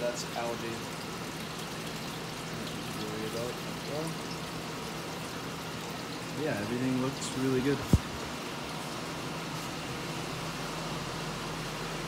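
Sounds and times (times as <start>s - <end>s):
water trickling: 0.0s - 10.7s.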